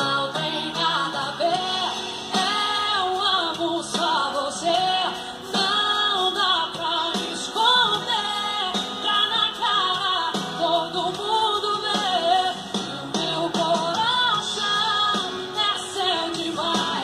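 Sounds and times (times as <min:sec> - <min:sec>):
acoustic guitars: 0:00.0 - 0:17.0
bass: 0:00.0 - 0:17.0
woman singing: 0:00.0 - 0:17.0.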